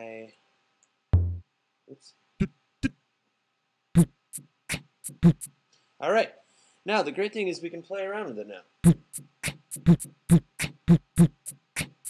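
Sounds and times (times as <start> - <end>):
beatbox drum hits: 1.2 - 1.4, 4.0 - 5.5, 8.8 - 12.0.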